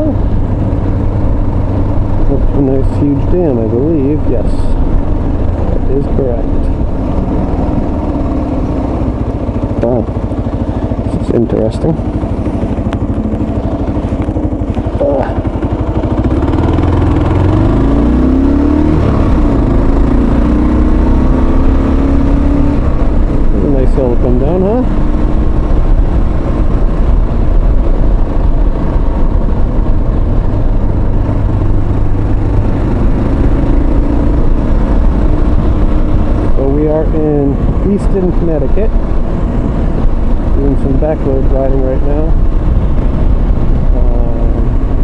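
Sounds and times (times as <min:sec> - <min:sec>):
low wind rumble: 0:00.0 - 0:45.0
motorcycle engine accelerating: 0:00.0 - 0:45.0.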